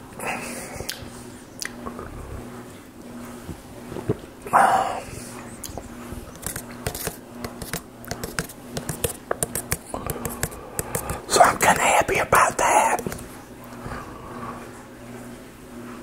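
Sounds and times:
fingers tapping cup and lid: 6.4s - 11.9s.

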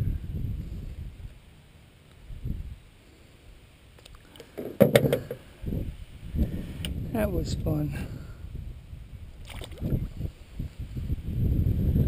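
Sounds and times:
dull thumps: 4.6s - 5.4s
sharp knocks against boat: 4.6s - 5.4s.

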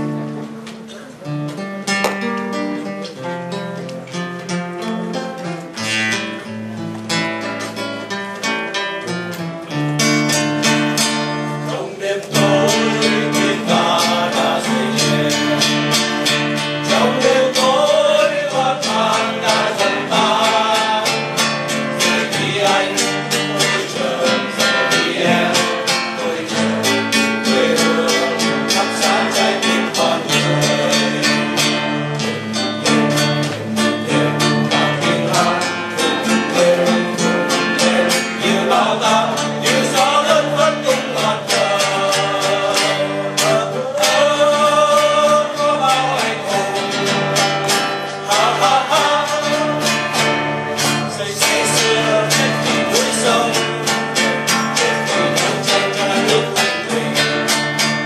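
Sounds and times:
acoustic guitar strumming: 0.0s - 58.0s
men singing: 10.6s - 58.0s.

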